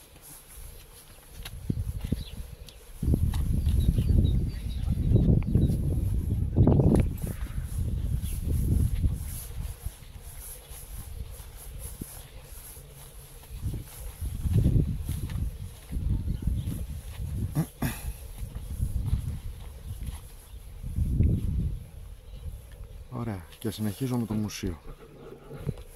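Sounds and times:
wind buffeting microphone: 1.3 - 23.2.

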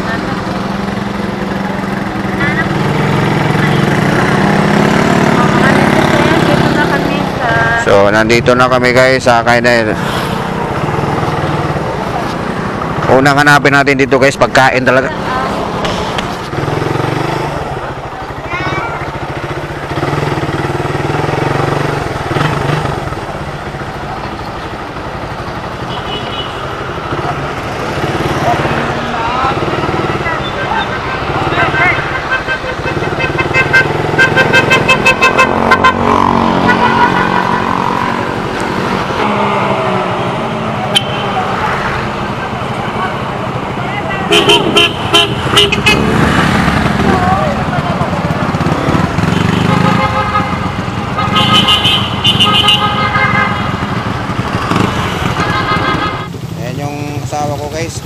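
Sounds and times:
motorcycle engine running: 0.0 - 8.6, 14.8 - 58.0.

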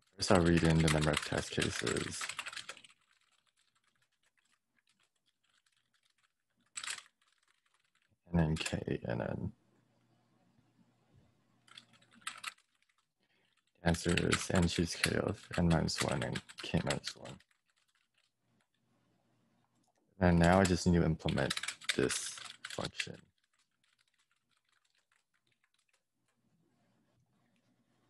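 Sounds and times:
person speaking: 0.0 - 2.8, 8.3 - 9.5, 13.8 - 17.4, 20.2 - 23.2
typing on computer keyboard: 0.1 - 8.8, 11.7 - 18.3, 20.4 - 26.0.

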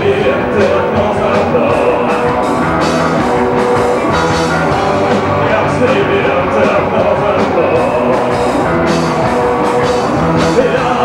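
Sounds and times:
punk rock band playing live: 0.0 - 11.0.

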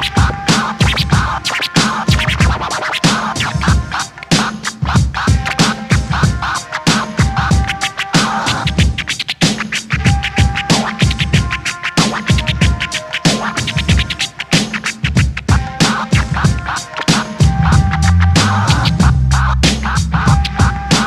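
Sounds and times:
instrumental hip hop beat: 0.0 - 21.0
turntable scratching: 0.0 - 21.0.

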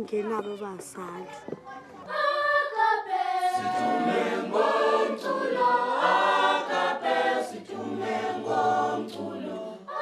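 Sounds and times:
children's choir singing a cappella: 1.8 - 10.0.

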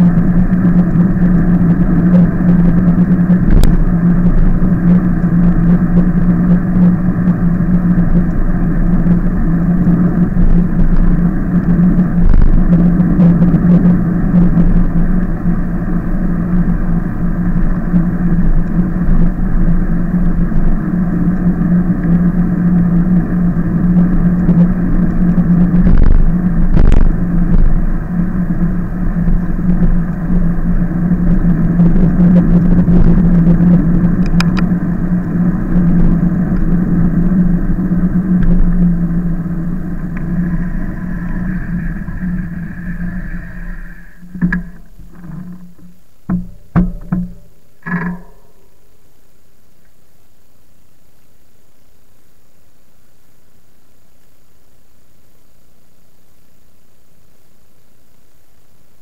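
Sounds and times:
tyre noise on asphalt: 0.0 - 49.0
e-bike rumble: 0.0 - 49.7
constant low hum: 0.0 - 59.0
wind: 0.0 - 59.0
knocks from bumps: 44.3 - 48.5.

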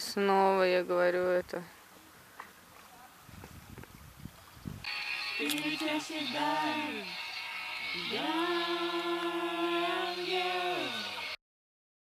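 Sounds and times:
people singing together: 4.9 - 11.4.

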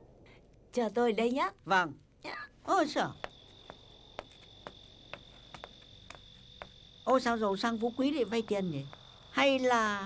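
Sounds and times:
crickets trilling: 0.7 - 10.0
light footsteps: 2.8 - 7.4.

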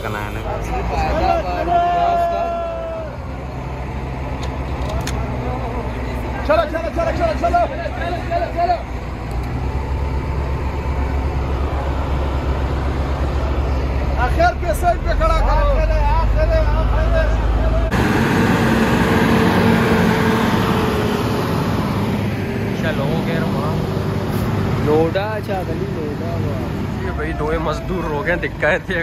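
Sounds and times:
men's voices: 0.0 - 3.6, 4.8 - 9.1, 13.1 - 29.0
heavy vehicle engine rumbling: 0.0 - 29.0
moving vehicle road noise: 0.0 - 29.0.

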